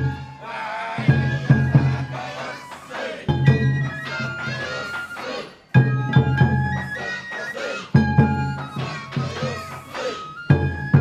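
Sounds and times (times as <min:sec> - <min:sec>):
bamboo flute melody: 0:00.0 - 0:11.0
taiko drum beats: 0:00.0 - 0:11.0
voices singing: 0:00.0 - 0:11.0.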